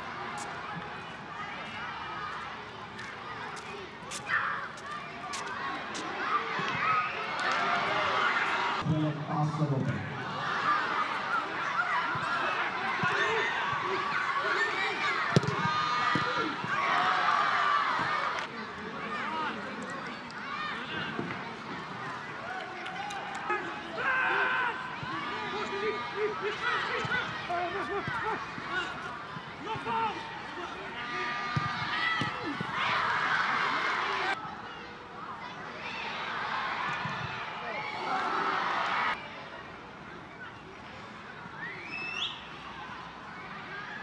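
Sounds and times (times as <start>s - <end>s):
voices shouting and calling: 10.2s - 39.2s.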